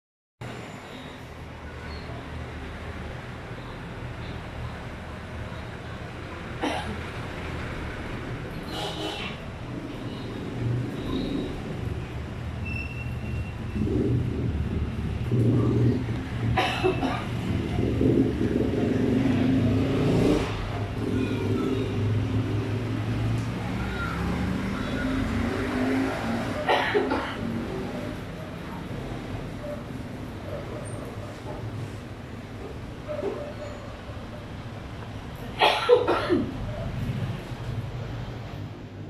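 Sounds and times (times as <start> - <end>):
vehicle engine humming: 2.4 - 39.0.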